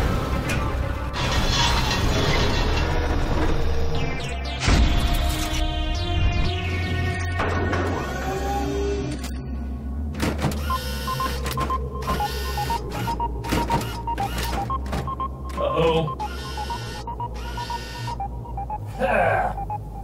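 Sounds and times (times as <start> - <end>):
low pulsing music: 0.0 - 20.0
electronic beeps: 10.6 - 20.0.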